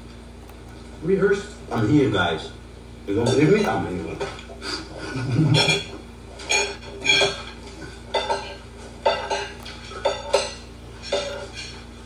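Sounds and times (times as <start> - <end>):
metal spoon clinking on ceramic plate: 5.6 - 11.8.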